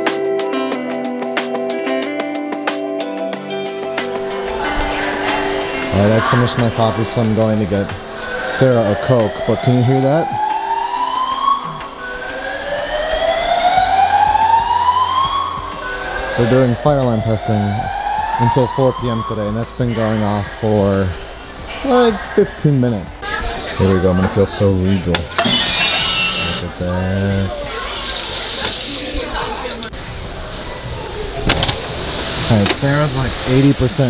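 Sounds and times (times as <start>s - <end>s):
fire alarm rising whoop tone: 9.3s - 16.4s, 25.4s - 26.6s.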